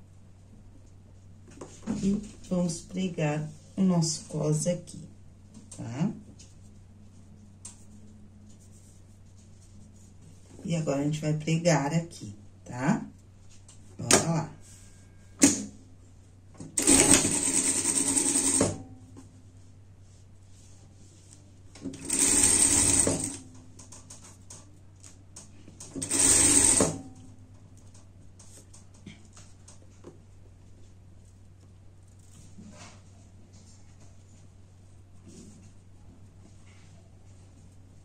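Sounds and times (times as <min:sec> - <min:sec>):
industrial sewing machine stitching: 0:16.8 - 0:18.8, 0:21.8 - 0:23.4, 0:25.9 - 0:27.0.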